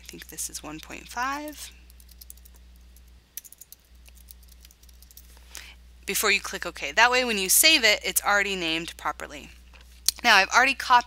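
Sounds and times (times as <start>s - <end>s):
computer keyboard typing: 1.5s - 5.3s.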